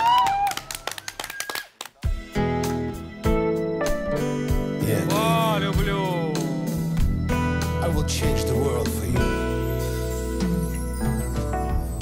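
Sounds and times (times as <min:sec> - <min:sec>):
high cheering whoop: 0:00.0 - 0:01.6
people clapping: 0:00.0 - 0:02.3.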